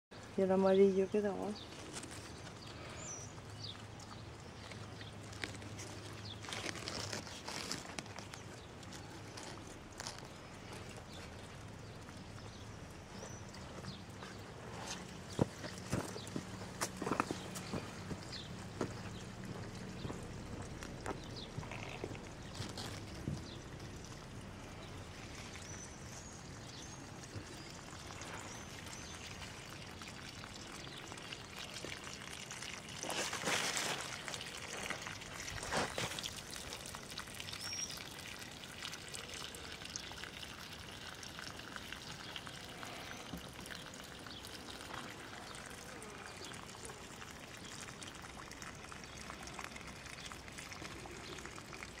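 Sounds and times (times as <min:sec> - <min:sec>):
hose water pouring into water: 0:01.4 - 0:52.0.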